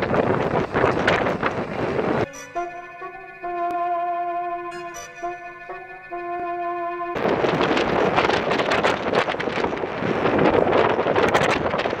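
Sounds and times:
wind buffeting microphone: 0:00.0 - 0:02.4, 0:07.1 - 0:12.0.

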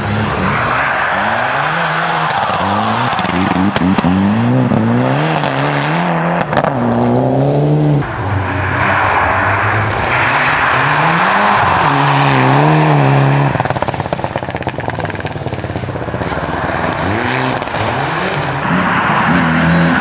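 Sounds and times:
rally car engine revving hard: 0:01.2 - 0:08.0, 0:10.2 - 0:15.2.

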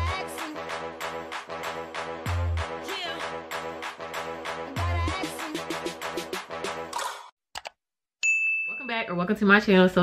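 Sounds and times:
high bell-like ding: 0:08.2 - 0:09.2.

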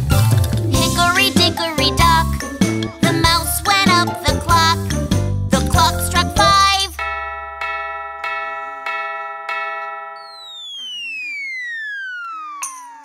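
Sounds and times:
cartoon clock chime striking: 0:06.9 - 0:13.0
whistle sliding down in pitch: 0:10.2 - 0:13.0.

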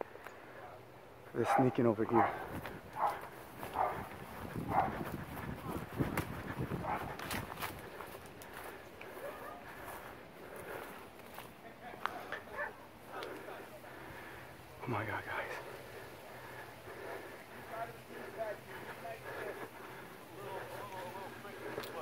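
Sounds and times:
dog barking: 0:01.4 - 0:04.1, 0:04.7 - 0:05.0, 0:06.8 - 0:07.2, 0:09.2 - 0:09.7, 0:12.4 - 0:12.8
footsteps: 0:01.4 - 0:14.3, 0:15.3 - 0:22.0.

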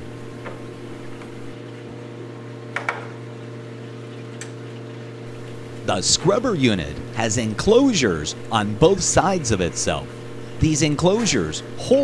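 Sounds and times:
aquarium equipment hum: 0:00.0 - 0:12.0.

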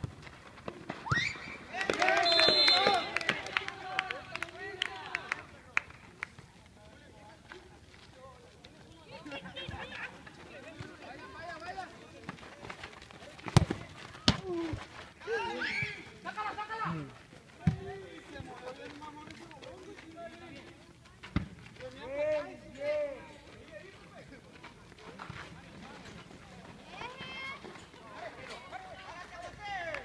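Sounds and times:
players shouting: 0:01.1 - 0:05.4, 0:14.2 - 0:17.1.

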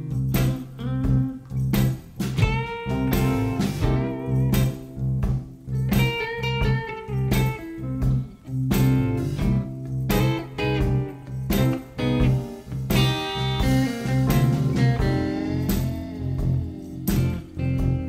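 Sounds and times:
blues backing track: 0:00.0 - 0:18.0
electric guitar blues lead: 0:00.0 - 0:18.0.

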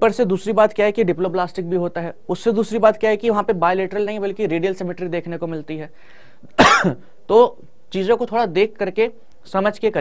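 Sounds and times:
man coughing loudly: 0:06.6 - 0:07.1.

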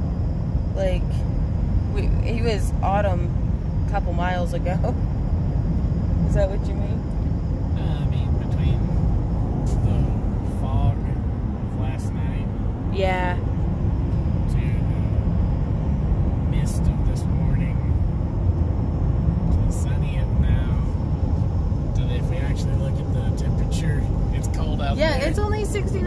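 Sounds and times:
road and engine rumble in car: 0:00.0 - 0:26.0.

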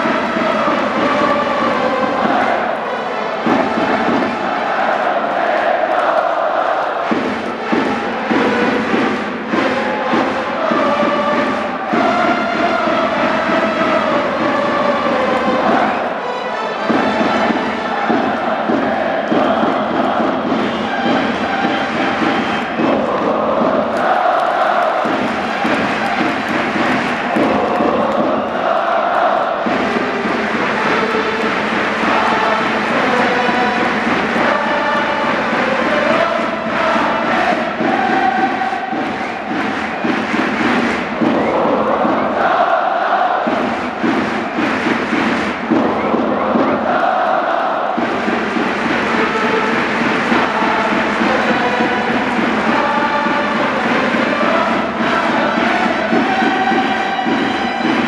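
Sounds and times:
stadium crowd chanting: 0:00.0 - 0:58.0
stadium music melody: 0:00.0 - 0:58.0.

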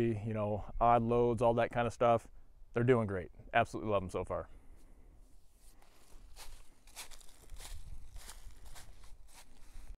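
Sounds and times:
footsteps in dry leaves: 0:05.6 - 0:10.0.

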